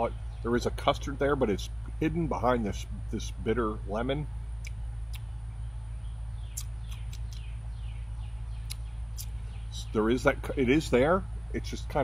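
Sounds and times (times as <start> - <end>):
small birds chirping: 0.0 - 12.0
steady low hum: 0.0 - 12.0.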